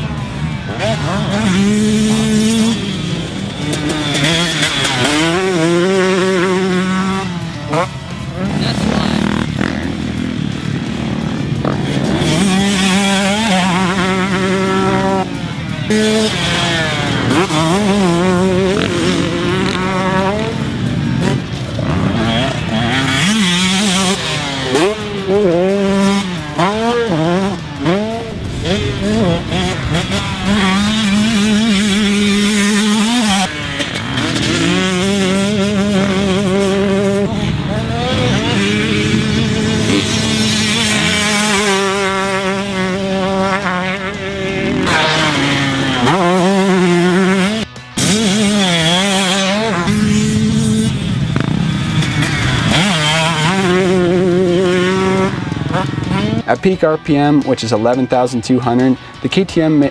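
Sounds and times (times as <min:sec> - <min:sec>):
motocross engine revving: 0:00.0 - 0:59.9.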